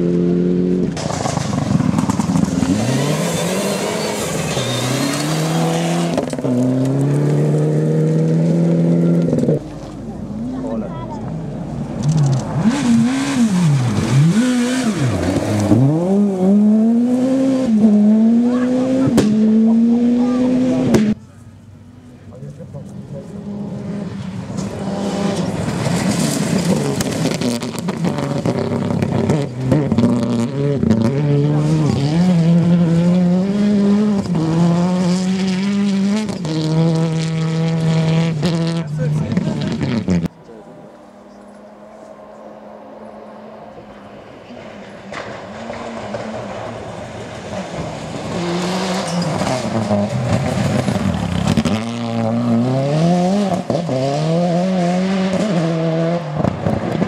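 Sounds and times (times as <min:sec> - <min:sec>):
rally car engine revving: 0:00.0 - 0:21.2, 0:22.4 - 0:57.0.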